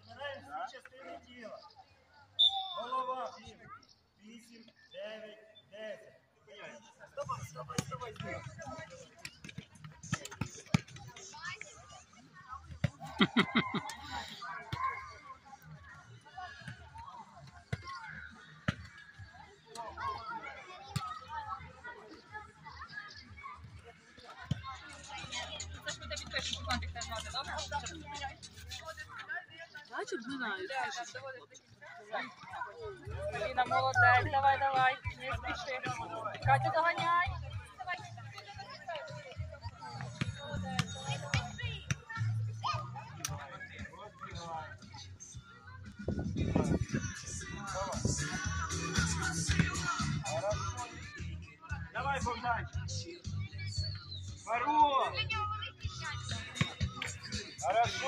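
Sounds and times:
children chattering: 0:08.3 - 0:43.9
background music with bass line: 0:45.4 - 0:54.2, 0:55.1 - 0:58.0.

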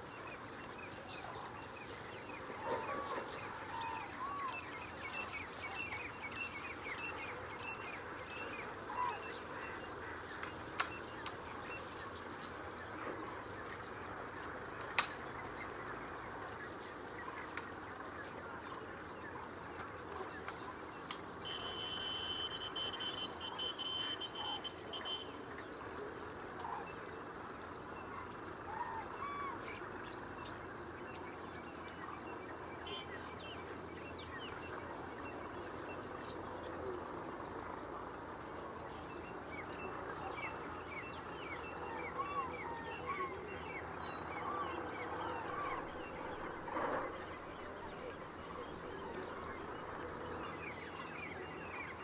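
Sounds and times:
birds chirping: 0:00.0 - 0:52.0.

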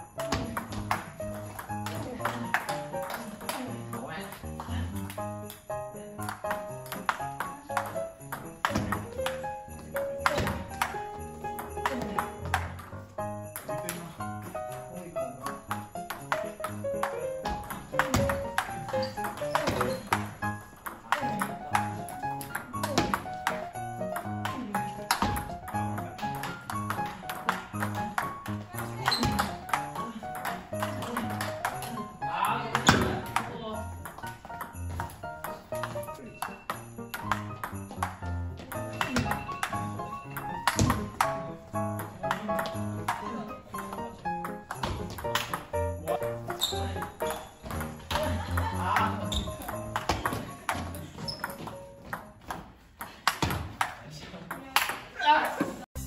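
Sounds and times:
background music: 0:00.0 - 0:54.0, 0:54.9 - 0:56.0.

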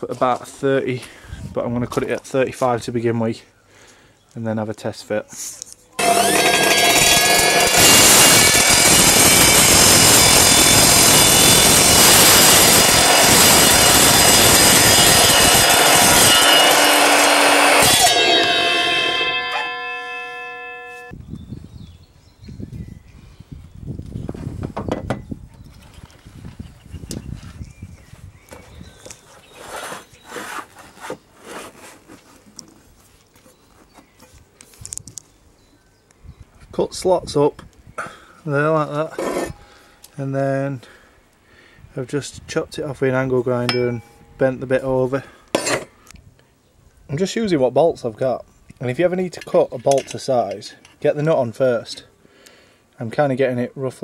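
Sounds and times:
mitre saw cutting steel: 0:06.0 - 0:21.1, 0:39.1 - 0:39.6
saw blade winding down ringing: 0:06.0 - 0:21.1.

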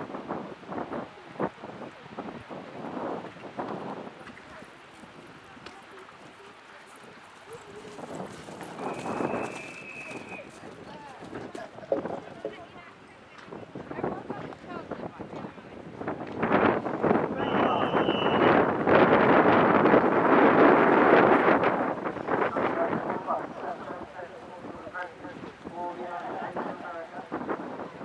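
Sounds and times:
wind buffeting microphone: 0:00.0 - 0:28.0
horse hoofbeats on grass: 0:06.8 - 0:12.7.

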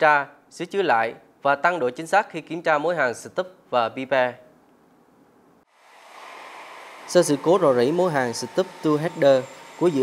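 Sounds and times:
factory floor hiss: 0:05.7 - 0:10.0.

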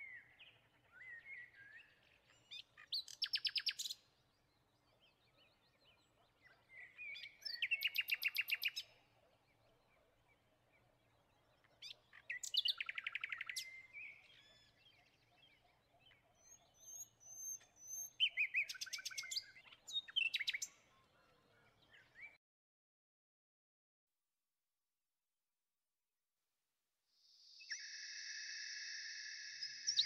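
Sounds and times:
songbird singing trills: 0:00.0 - 0:22.4, 0:27.5 - 0:30.0.

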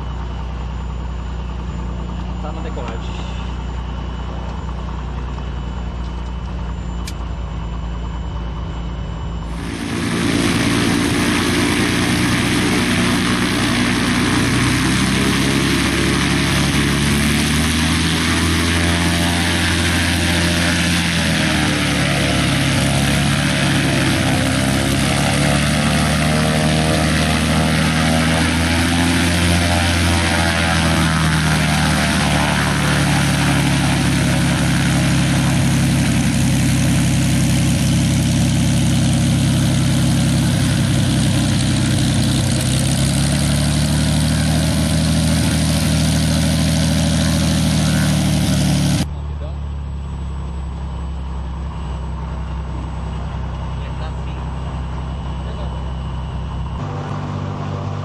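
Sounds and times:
propeller plane engine drone: 0:00.0 - 0:58.0.

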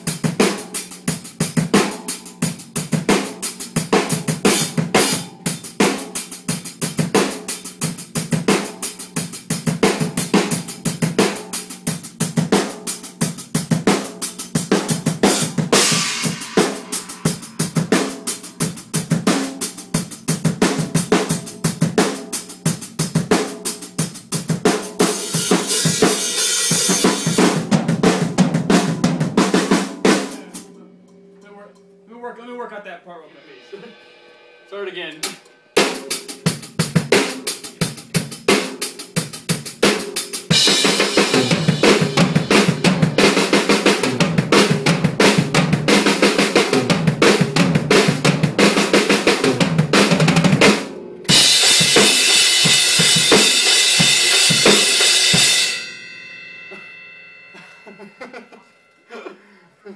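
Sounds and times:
drum kit beat: 0:00.0 - 0:58.3
crash cymbal wash: 0:33.2 - 0:36.4.

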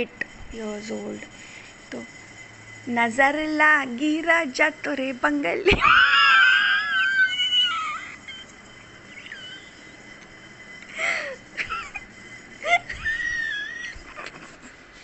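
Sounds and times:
wheezy squealing laughter: 0:05.7 - 0:10.1, 0:10.9 - 0:14.8.

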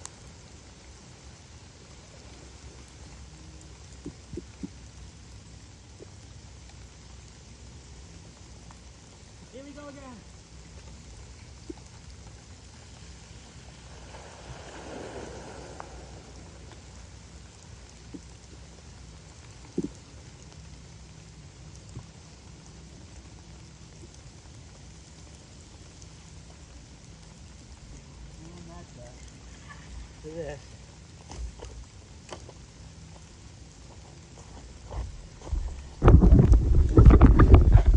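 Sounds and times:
light rain hiss: 0:00.0 - 0:37.9
low steady hum: 0:00.0 - 0:37.9.

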